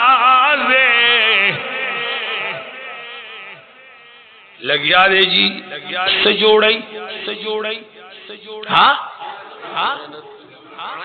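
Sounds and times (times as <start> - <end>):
man chanting unaccompanied: 0.0 - 11.0.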